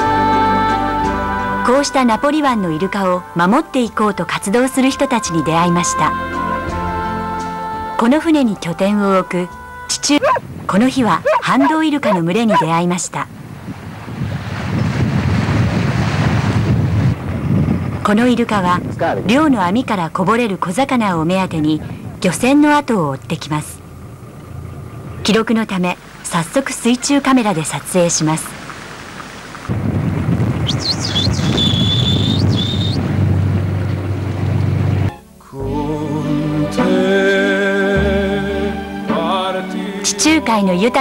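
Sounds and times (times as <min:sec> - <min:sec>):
boat noise: 0:00.0 - 0:41.0
dolphins whistling: 0:09.0 - 0:10.4, 0:11.1 - 0:12.8, 0:30.6 - 0:33.0
sea water rushing along hull: 0:09.7 - 0:21.8, 0:23.8 - 0:35.1
wind buffeting microphone: 0:10.1 - 0:25.3, 0:29.6 - 0:35.1.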